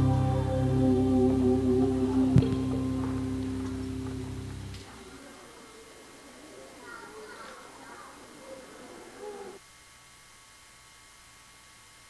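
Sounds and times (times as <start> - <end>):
low steady hiss: 0.0 - 12.0
faint voice: 6.4 - 9.6.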